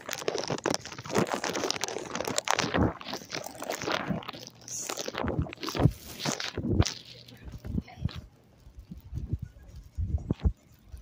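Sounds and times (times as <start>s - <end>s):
rustling handling noise: 0.0s - 11.0s.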